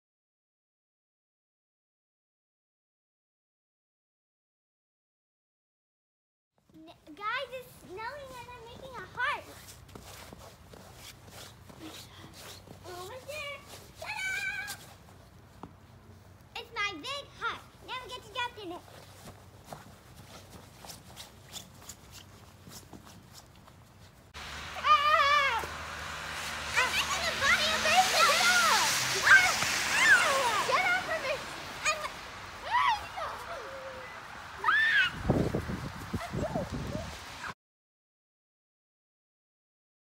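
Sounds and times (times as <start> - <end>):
footsteps crunching in snow: 6.6 - 34.4
children squealing and calling: 11.8 - 15.0, 24.7 - 35.3, 36.1 - 37.2.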